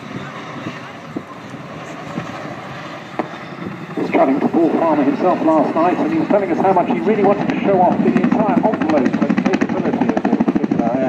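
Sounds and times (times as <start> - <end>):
distant helicopter rotor rumble: 0.0 - 11.0
wind on microphone: 0.0 - 11.0.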